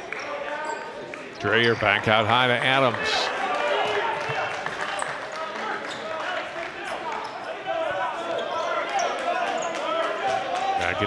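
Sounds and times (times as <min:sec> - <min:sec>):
echoing voices: 0:00.0 - 0:11.0.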